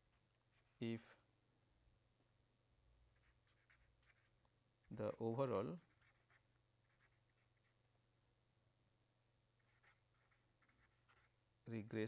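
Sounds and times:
pen scratching on paper: 3.1 - 7.8, 9.6 - 11.4.

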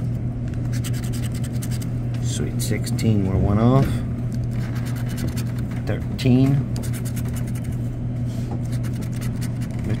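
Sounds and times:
steady low hum: 0.0 - 10.0
scraping lottery ticket coating: 0.7 - 1.9, 4.5 - 6.0, 6.8 - 7.9, 8.6 - 10.0.

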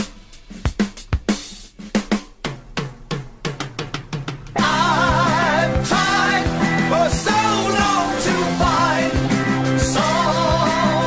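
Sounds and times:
rock drum kit break: 0.0 - 11.0.

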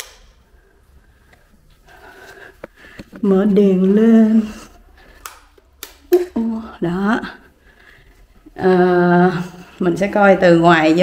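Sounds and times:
light switches clicking: 0.0 - 0.4, 5.2 - 6.1
woman speaking: 3.2 - 4.8, 6.1 - 7.5, 8.5 - 11.0.

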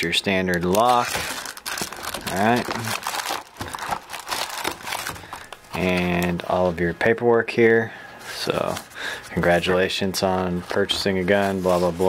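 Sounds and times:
plastic and cardboard packaging crinkling: 0.0 - 6.5, 8.6 - 12.0.

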